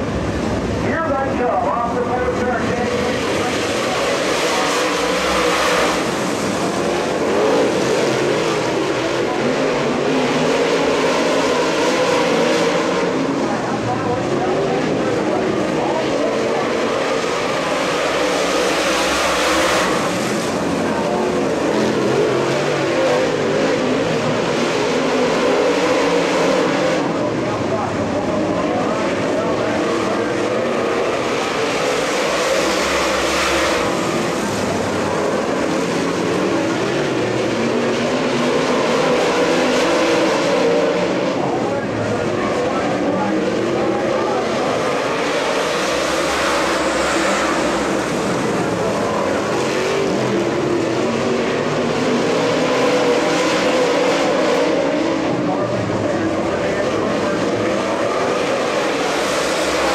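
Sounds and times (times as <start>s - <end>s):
race car engines: 0.0s - 59.9s.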